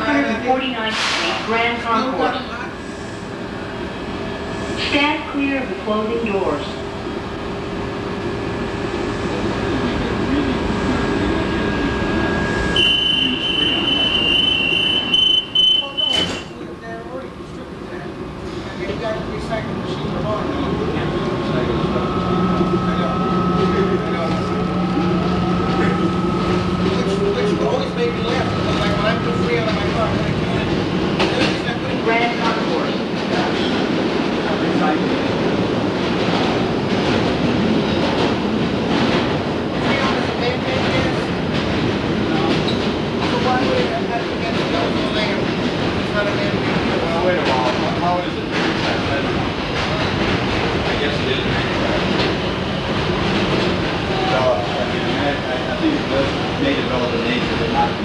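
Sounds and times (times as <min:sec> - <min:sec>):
subway car rumble: 0:00.0 - 0:58.0
subway car whine: 0:00.0 - 0:58.0.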